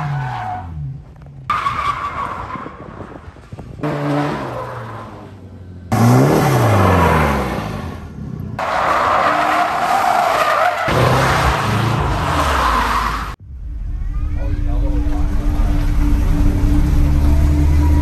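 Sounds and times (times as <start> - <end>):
car engines revving: 0.0 - 13.4, 14.1 - 18.0.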